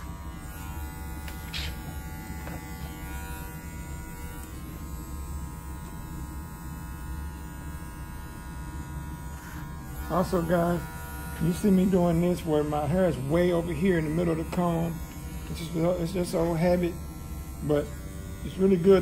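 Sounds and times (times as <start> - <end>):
electric hair clipper cutting hair: 0.0 - 19.0.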